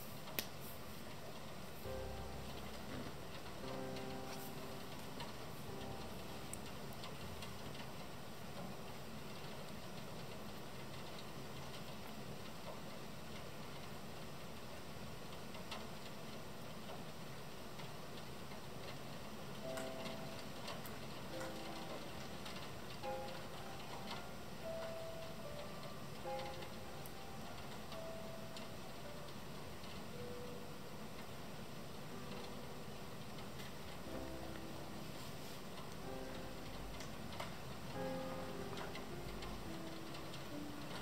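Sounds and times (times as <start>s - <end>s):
rain hissing: 0.0s - 15.3s, 17.5s - 41.0s
ticks of raindrops: 0.2s - 41.0s
soft music notes: 1.8s - 8.0s, 19.6s - 41.0s.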